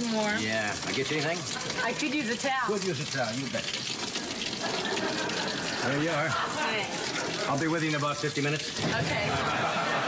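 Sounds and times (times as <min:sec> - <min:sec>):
shower water spraying: 0:00.0 - 0:10.0.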